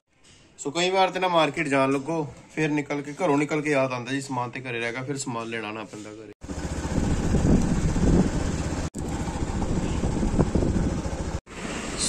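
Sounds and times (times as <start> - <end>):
road noise: 6.4 - 12.0
wind rumbling on microphone: 6.8 - 11.4.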